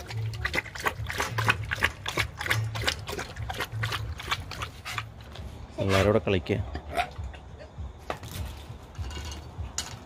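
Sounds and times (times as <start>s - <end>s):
dog lapping water from bowl: 0.0s - 6.2s.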